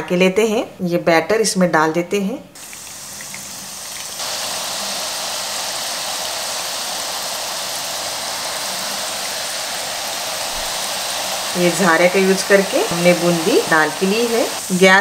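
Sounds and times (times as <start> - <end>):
batter sizzling in hot oil: 2.6 - 15.0.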